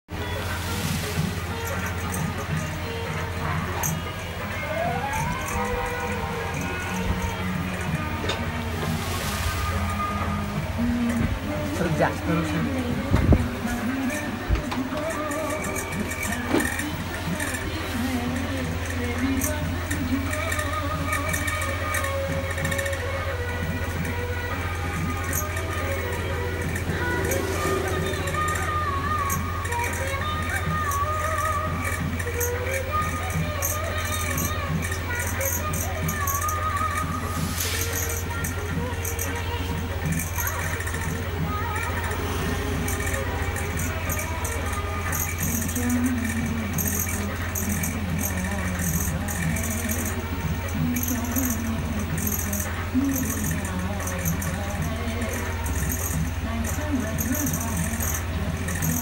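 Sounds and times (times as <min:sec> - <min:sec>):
music: 0:00.1 - 0:59.0
steady low hum: 0:00.1 - 0:59.0
background voices: 0:25.2 - 0:30.8.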